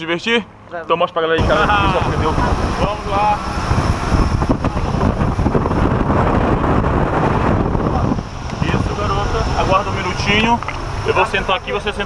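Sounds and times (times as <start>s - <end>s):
prop wash buffeting microphone: 0.0s - 12.0s
aircraft engine and propeller: 1.4s - 12.0s.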